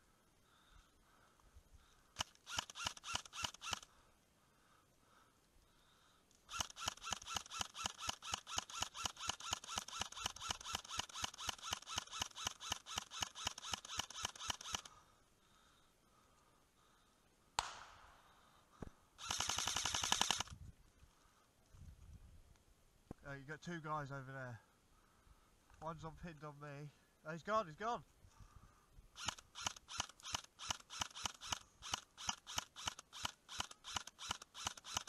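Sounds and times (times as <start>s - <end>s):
airsoft gun rapid fire: 2.2s - 3.8s, 6.5s - 14.9s, 17.6s - 18.3s, 19.2s - 20.5s, 29.2s - 35.0s.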